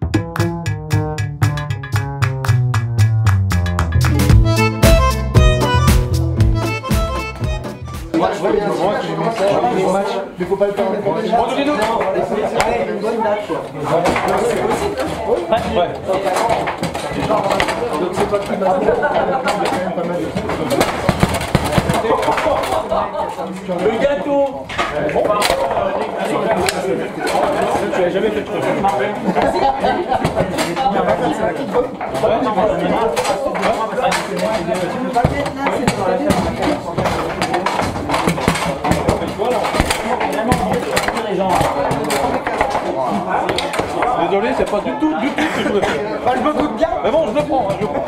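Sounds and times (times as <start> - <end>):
music: 0.0 - 8.3
people talking: 7.4 - 48.0
voices: 7.5 - 48.0
table football rods knocking: 13.9 - 22.9, 30.1 - 44.8, 46.5 - 48.0
sharp clacks of foosball shots: 13.9 - 23.0, 28.8 - 44.8
table football ball struck: 35.2 - 42.8.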